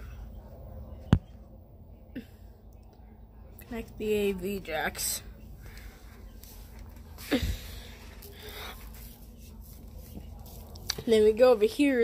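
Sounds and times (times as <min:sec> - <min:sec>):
soft breath: 0:05.5 - 0:09.2.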